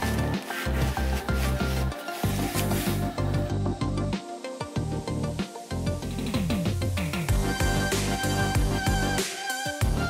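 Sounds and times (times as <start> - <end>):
paper towel rubbing metal: 0.0 - 3.4
music with pulsing bass line: 0.0 - 10.0.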